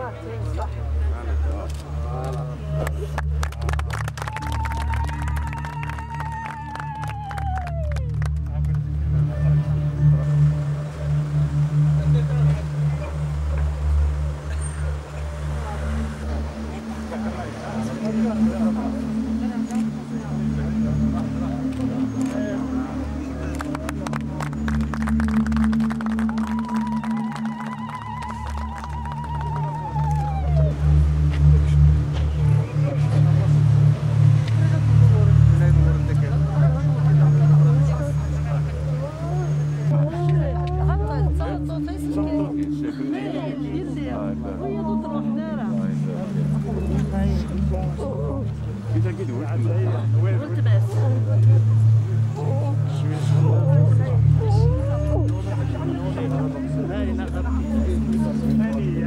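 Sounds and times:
high wavering ululation: 0.0s - 59.0s
low rumble: 0.0s - 59.0s
crowd clapping: 0.4s - 33.5s
high trilled ululation: 9.3s - 35.9s.

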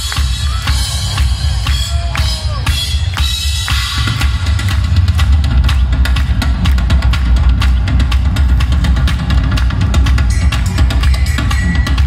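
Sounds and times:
fast drumming: 0.0s - 12.0s
live rock band playing: 0.0s - 12.0s.

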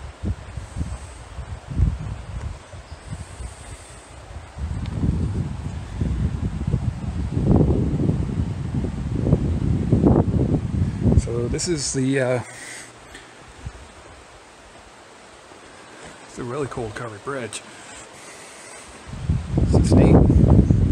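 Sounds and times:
wind rumbling on microphone: 0.0s - 17.4s, 18.0s - 20.9s.

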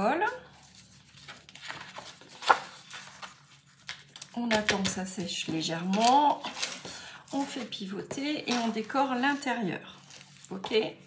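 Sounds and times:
paper rustling: 0.4s - 10.9s.

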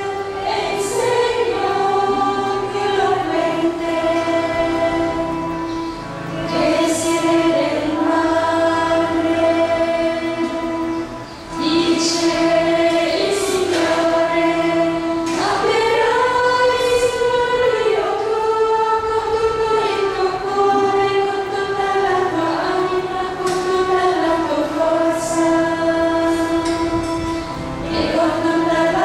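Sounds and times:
women's choir singing slowly: 0.0s - 29.0s.

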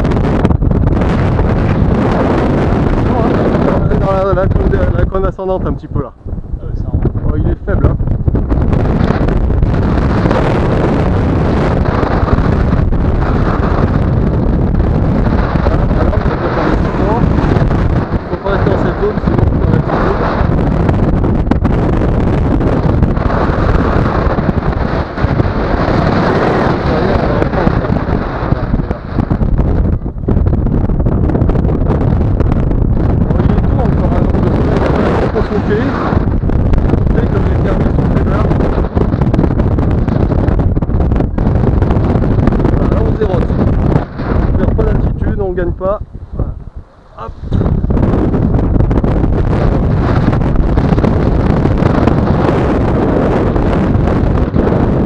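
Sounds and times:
airflow buffeting microphone: 0.0s - 55.0s.

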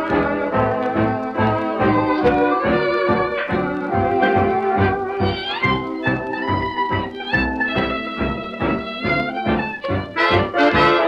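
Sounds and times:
dance orchestra playing fox trot: 0.0s - 11.0s.

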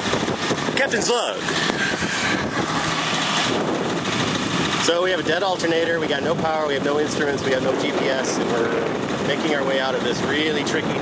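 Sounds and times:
water rushing: 0.0s - 11.0s
wind rushing: 0.0s - 11.0s.

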